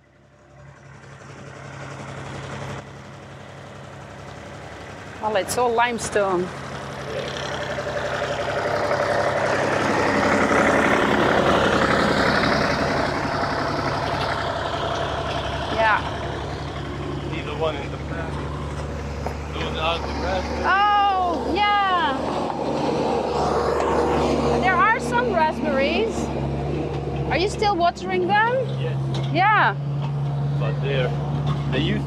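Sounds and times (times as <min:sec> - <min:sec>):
vehicle engine running: 0:00.0 - 0:32.0.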